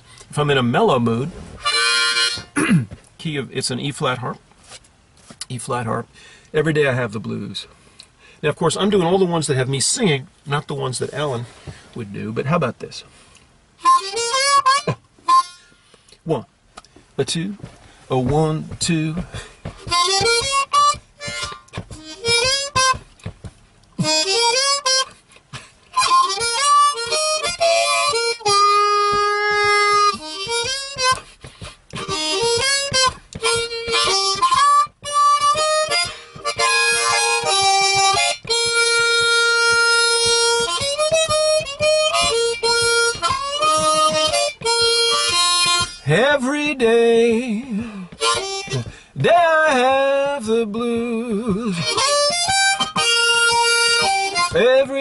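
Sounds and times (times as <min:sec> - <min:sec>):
blues harmonica playing: 0:00.0 - 0:03.0, 0:13.7 - 0:16.3, 0:17.4 - 0:55.0.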